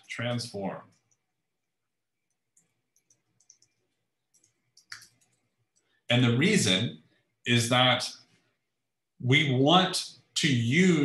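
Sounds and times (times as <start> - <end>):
faint keyboard keystrokes: 2.3 - 5.5.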